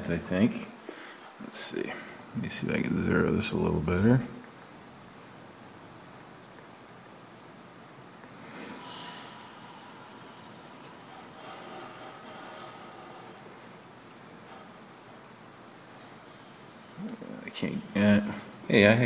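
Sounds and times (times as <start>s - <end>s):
soft hissing scrape: 8.2s - 15.3s.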